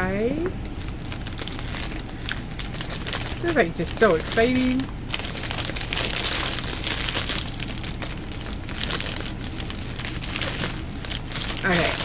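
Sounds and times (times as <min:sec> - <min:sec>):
plastic wrapping crinkling: 0:00.6 - 0:12.0.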